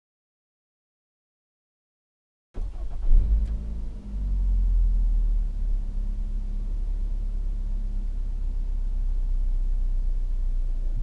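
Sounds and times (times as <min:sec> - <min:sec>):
car engine idling: 0:02.6 - 0:11.0.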